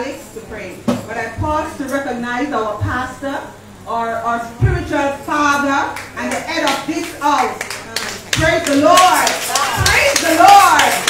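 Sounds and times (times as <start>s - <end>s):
voices: 0.0s - 11.0s
congregation clapping: 6.0s - 11.0s.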